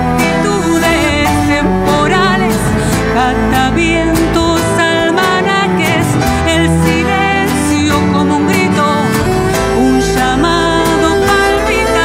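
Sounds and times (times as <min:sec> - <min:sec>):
cello melody with vibrato: 0:00.0 - 0:12.0
sustained low notes: 0:00.3 - 0:07.2, 0:09.1 - 0:12.0.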